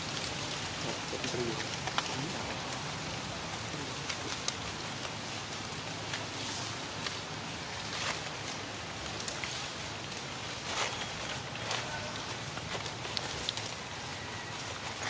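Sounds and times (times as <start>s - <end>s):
outdoor background hiss: 0.0s - 15.0s
rustles: 0.0s - 15.0s.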